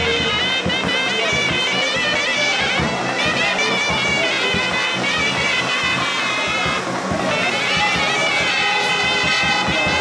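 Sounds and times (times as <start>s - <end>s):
reedy wavering melody: 0.0s - 10.0s
steady drum strokes: 0.0s - 10.0s.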